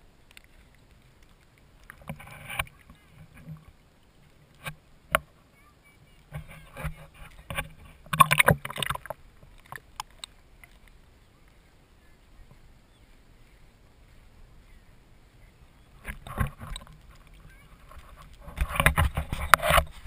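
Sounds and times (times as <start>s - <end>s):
water splashing and sloshing: 0.0s - 20.0s.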